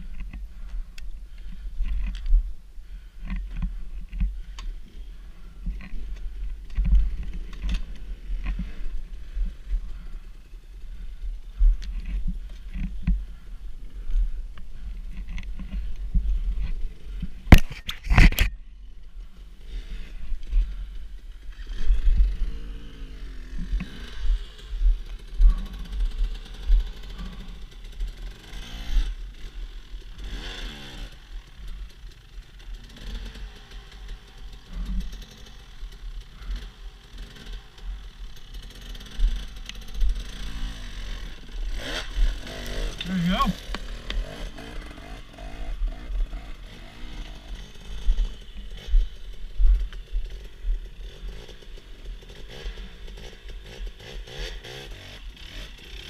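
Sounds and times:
steady low rumble: 0:00.0 - 0:17.7, 0:18.5 - 0:28.2, 0:39.0 - 0:53.6
dirt bike engine revving: 0:19.6 - 0:56.0.

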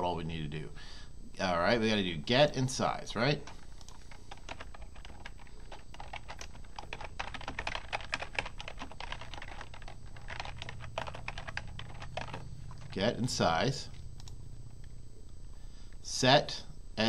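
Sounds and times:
steady low hum: 0:00.0 - 0:17.0
keyboard keystroke clicks: 0:13.9 - 0:14.9.

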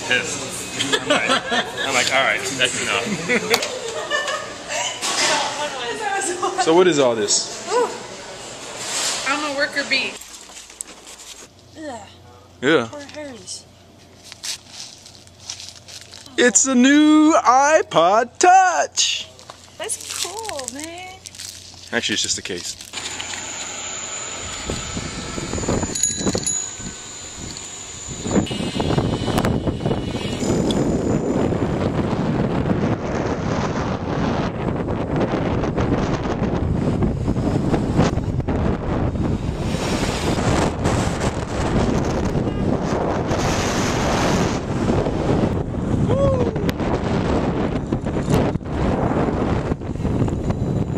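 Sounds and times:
wind buffeting microphone: 0:24.4 - 0:50.9.

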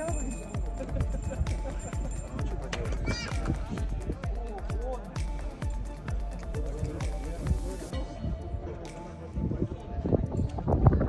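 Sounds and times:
person speaking: 0:00.0 - 0:01.0
background music: 0:00.0 - 0:11.0.

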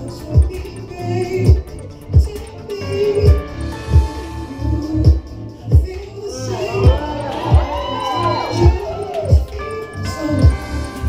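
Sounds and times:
music with heavy bass beat: 0:00.0 - 0:11.0
crowd cheering and whooping: 0:06.4 - 0:10.5.

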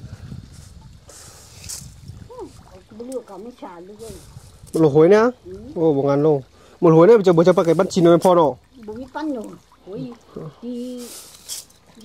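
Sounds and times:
short high hiss: 0:00.5 - 0:02.0, 0:11.0 - 0:11.7.

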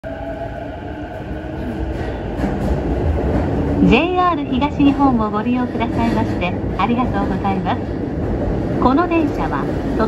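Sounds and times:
train running rumble: 0:00.0 - 0:10.0.

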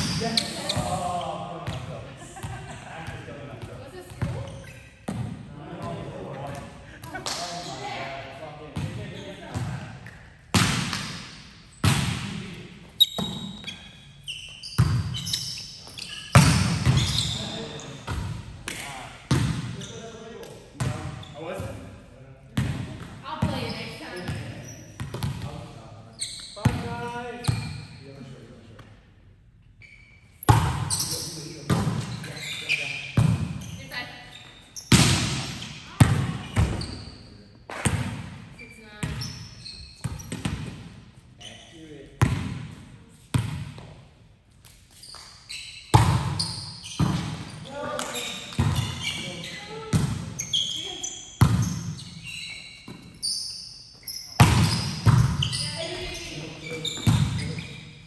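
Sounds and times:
players' voices: 0:00.0 - 0:04.7, 0:05.3 - 0:10.1, 0:47.6 - 0:51.2
volleyball slaps echoing: 0:08.8 - 0:12.6, 0:16.4 - 0:17.1, 0:18.0 - 0:19.8, 0:30.4 - 0:31.0, 0:33.2 - 0:33.6, 0:34.9 - 0:36.9, 0:37.7 - 0:39.2, 0:45.9 - 0:46.4, 0:47.0 - 0:49.0, 0:49.9 - 0:50.4, 0:51.4 - 0:51.9, 0:54.4 - 0:55.9.

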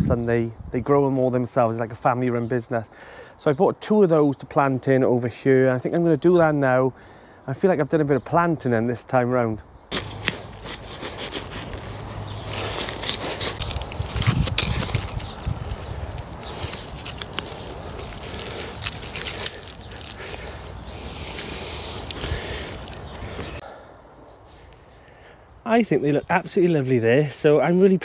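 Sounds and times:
trowel digging in soil: 0:09.9 - 0:23.6
wood chips rustling: 0:09.9 - 0:23.6.

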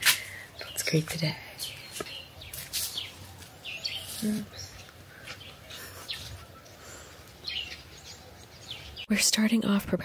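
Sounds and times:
small birds chirping: 0:00.0 - 0:09.9.

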